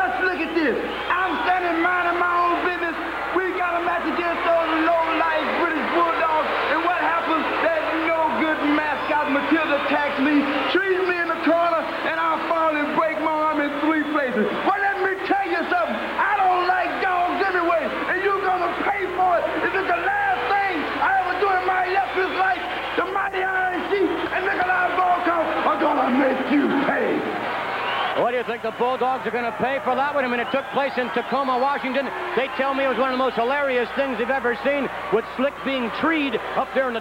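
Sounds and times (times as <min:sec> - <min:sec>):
man talking: 0:00.0 - 0:27.4, 0:28.2 - 0:37.0.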